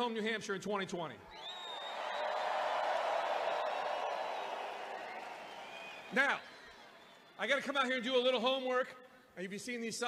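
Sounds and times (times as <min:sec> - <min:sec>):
indoor crowd cheering: 0:01.3 - 0:08.5.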